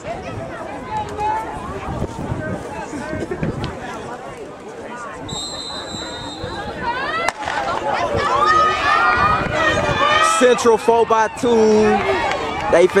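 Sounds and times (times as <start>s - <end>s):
spectators chattering: 0.0s - 13.0s
spectators yelling and cheering: 5.2s - 13.0s
high whistle: 5.3s - 6.8s.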